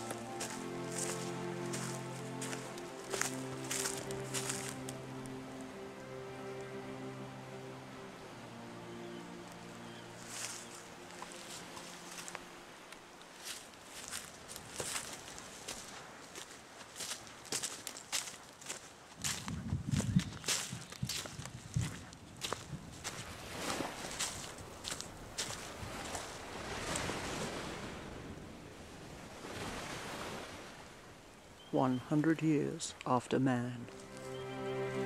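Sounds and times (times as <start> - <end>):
footsteps on dry leaves: 0.0 - 5.4, 10.2 - 12.5, 13.3 - 26.3, 33.8 - 35.0.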